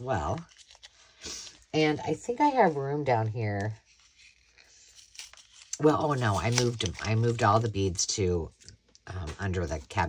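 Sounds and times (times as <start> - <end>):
paper card rustling: 0.2 - 1.5, 3.6 - 7.9
woman speaking: 1.7 - 3.8, 5.8 - 8.5.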